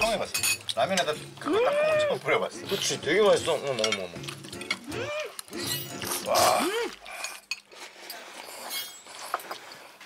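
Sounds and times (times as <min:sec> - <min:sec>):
forks clinking against bowls: 0:00.0 - 0:01.2, 0:02.8 - 0:04.9, 0:05.5 - 0:06.5
noodles being slurped: 0:02.2 - 0:10.0.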